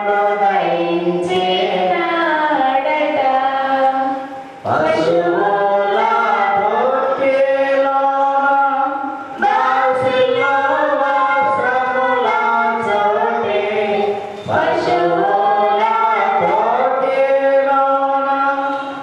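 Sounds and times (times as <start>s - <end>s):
person singing devotional song: 0.0s - 19.0s.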